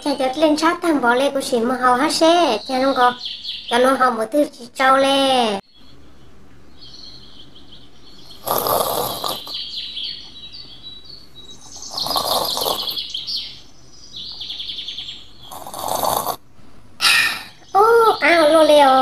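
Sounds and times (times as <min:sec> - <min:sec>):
songbirds chirping: 0:00.0 - 0:19.0.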